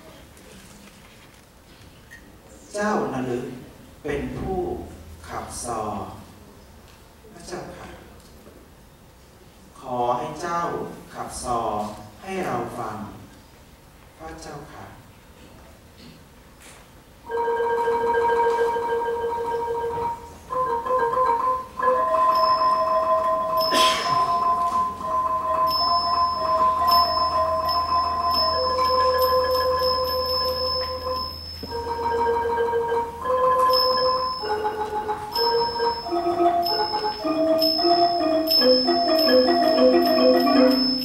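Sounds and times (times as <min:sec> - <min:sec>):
xylophones playing slow melody: 0:17.3 - 0:41.0
small cymbals ringing: 0:20.1 - 0:41.0.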